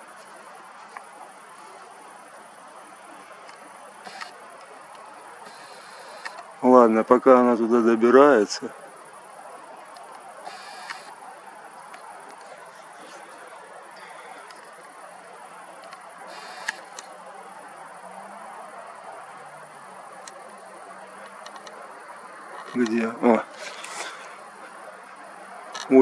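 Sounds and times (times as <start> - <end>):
faint outdoor background noise: 0.0 - 26.0.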